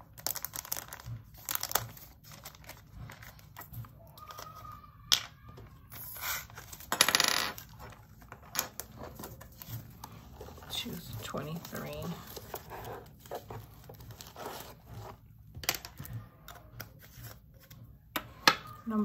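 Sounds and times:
beads rattling in plastic bottles: 0:00.0 - 0:14.7.

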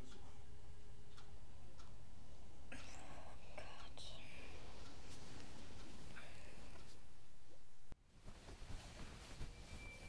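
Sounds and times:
low room hum: 0:00.0 - 0:10.0
girl whispering: 0:02.7 - 0:04.7, 0:06.2 - 0:06.7.

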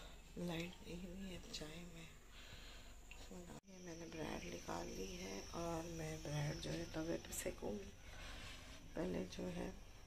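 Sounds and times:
cricket trilling: 0:03.7 - 0:08.0.

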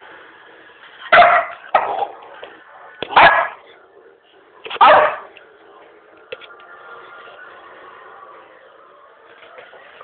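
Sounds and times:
dog barking: 0:01.1 - 0:02.2, 0:03.1 - 0:03.6, 0:04.7 - 0:05.3.

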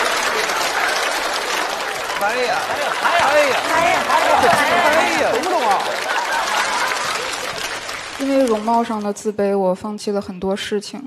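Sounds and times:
audience applauding: 0:00.0 - 0:09.2.

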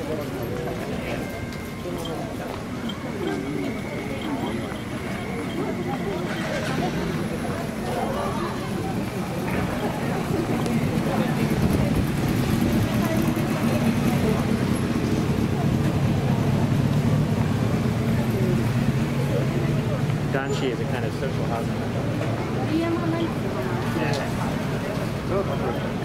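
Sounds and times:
bus engine hum: 0:00.0 - 0:26.0
passers-by chattering: 0:00.0 - 0:26.0
slow traffic: 0:00.0 - 0:26.0.

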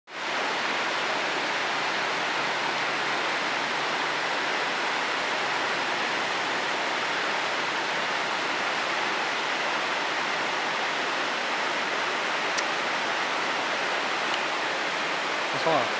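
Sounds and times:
flowing water rushing: 0:00.1 - 0:15.9.

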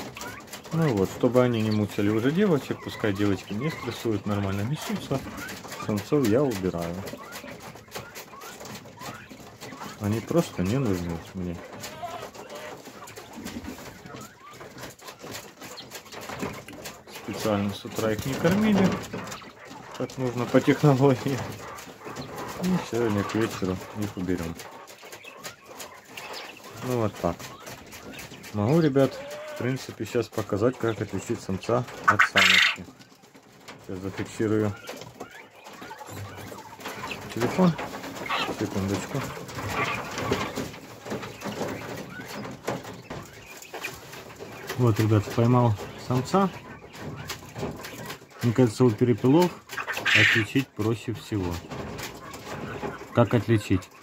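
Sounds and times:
quail giving soft low calls: 0:00.0 - 0:31.1, 0:31.8 - 0:33.2, 0:34.6 - 0:44.8, 0:49.5 - 0:50.5
birds scuffling on wire floor: 0:00.0 - 0:54.0
bird chirp: 0:24.7 - 0:28.8.

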